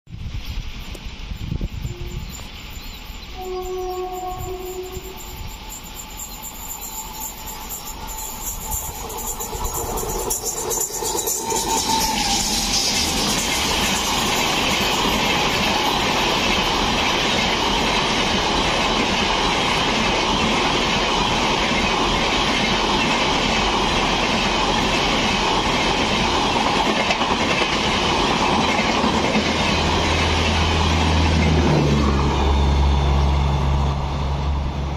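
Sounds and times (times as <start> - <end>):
train wheels rushing on rail: 0.1 - 34.9.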